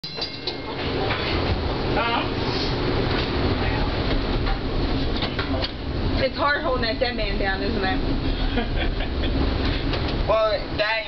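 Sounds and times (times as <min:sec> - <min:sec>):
moving vehicle rumble: 0:00.0 - 0:11.0.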